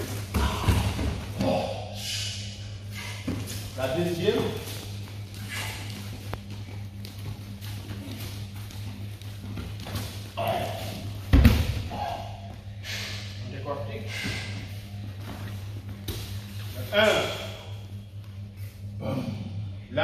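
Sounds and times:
steady low hum: 0.0s - 20.0s
bare feet shuffling on mat: 3.0s - 11.4s.

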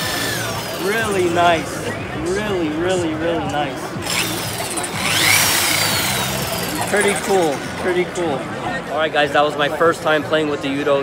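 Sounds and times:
crowd chatter: 0.0s - 11.0s
polisher motor whine: 4.0s - 7.8s.

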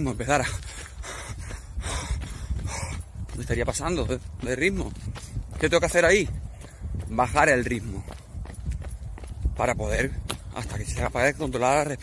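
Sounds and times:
man panting hard: 0.3s - 3.4s, 6.3s - 7.1s.

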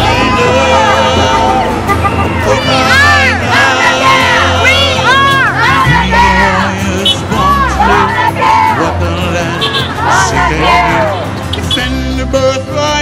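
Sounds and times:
crowd shouting and cheering: 0.0s - 12.1s
song over sound system: 0.0s - 13.0s.

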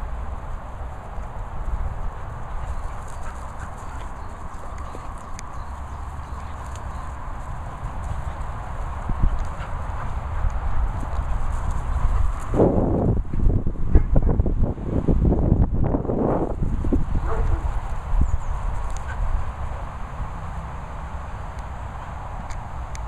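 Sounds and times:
wind rumble on microphone: 0.0s - 23.0s.

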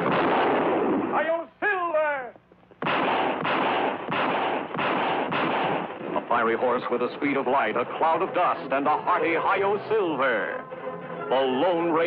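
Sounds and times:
revolver gunfire: 0.0s - 1.2s, 2.8s - 6.2s.

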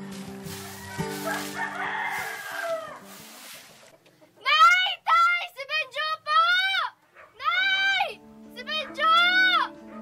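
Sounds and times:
rooster crowing: 0.5s - 3.1s.

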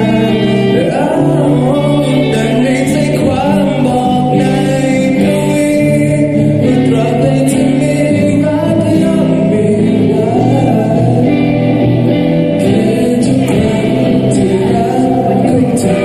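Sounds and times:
voices singing held notes: 0.0s - 16.0s
young man singing into microphone: 0.0s - 16.0s.

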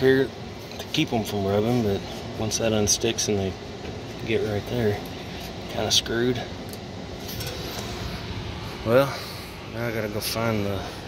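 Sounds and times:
air-conditioning unit running: 0.0s - 11.0s.

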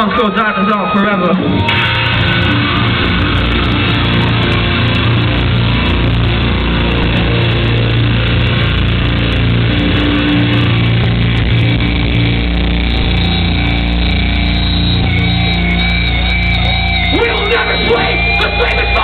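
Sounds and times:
metalcore band playing live: 0.0s - 19.0s.

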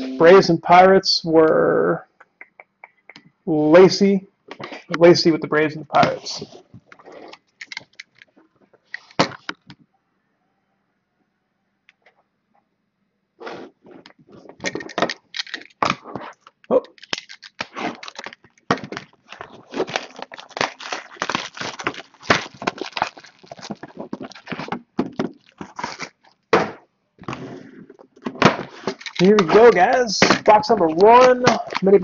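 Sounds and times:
plastic wrapping crinkling: 14.2s - 26.5s, 28.7s - 32.0s.

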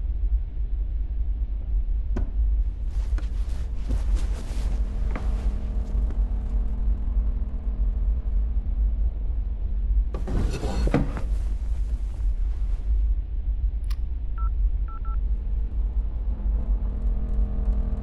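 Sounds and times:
low rumbling drone: 0.0s - 18.0s.

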